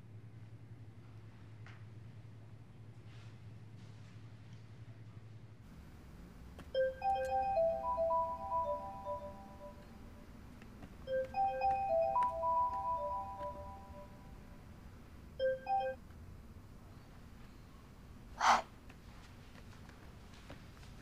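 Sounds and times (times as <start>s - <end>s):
phone ringtone bell-like tune: 6.8s - 10.1s, 11.1s - 14.4s, 15.4s - 16.0s.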